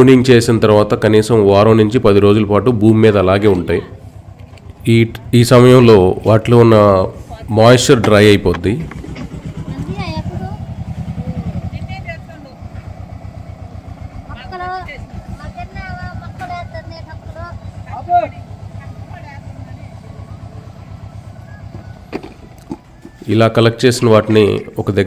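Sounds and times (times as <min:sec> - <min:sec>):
tractor diesel engine idling: 0:01.4 - 0:25.0.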